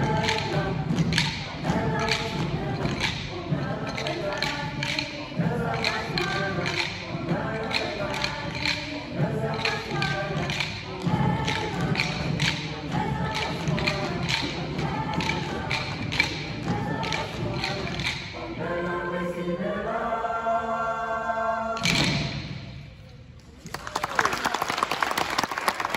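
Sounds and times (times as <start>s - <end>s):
choir singing: 0.0s - 22.8s
sticks struck together: 0.1s - 3.3s, 3.9s - 12.7s, 13.3s - 18.4s
audience applause: 23.6s - 25.9s.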